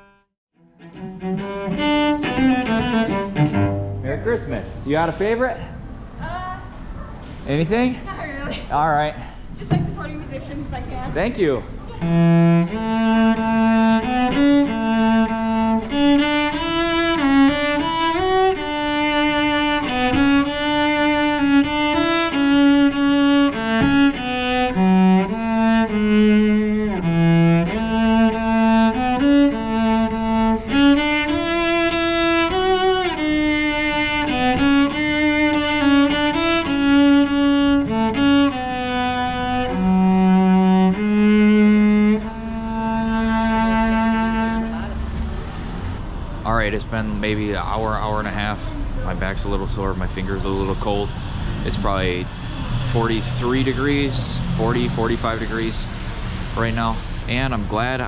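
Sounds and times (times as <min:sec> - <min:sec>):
bowed cello melody: 0:00.6 - 0:05.4, 0:09.6 - 0:58.0.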